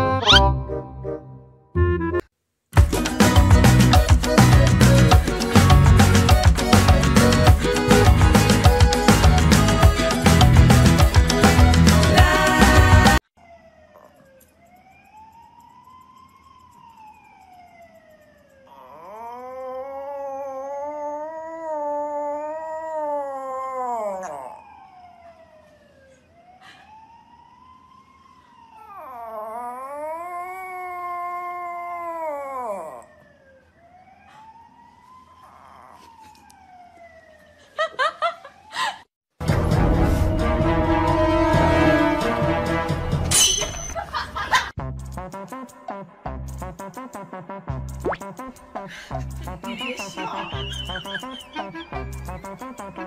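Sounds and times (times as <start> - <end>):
faint siren-like wails: 13.4 - 39.1, 49.5 - 53.0
dog howling: 18.7 - 24.8, 28.8 - 33.3, 35.4 - 36.3.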